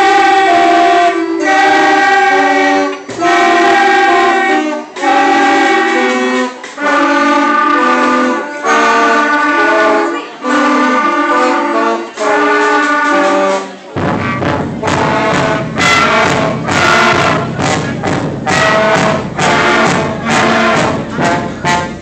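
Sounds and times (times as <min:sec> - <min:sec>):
school band of clarinets and flutes: 0:00.0 - 0:22.0.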